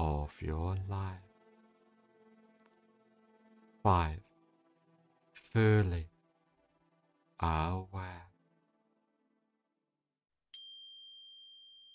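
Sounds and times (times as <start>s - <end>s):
faint background music: 0.0s - 9.6s
high-pitched bell chime: 10.6s - 11.9s.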